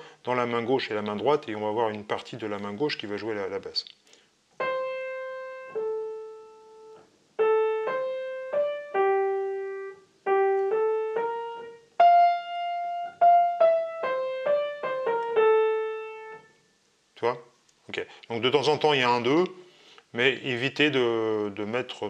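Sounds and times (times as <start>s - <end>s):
piano melody: 4.6s - 16.6s.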